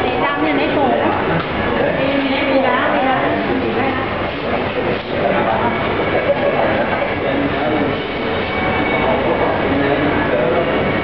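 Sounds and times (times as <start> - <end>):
crowd din: 0.0 - 11.0.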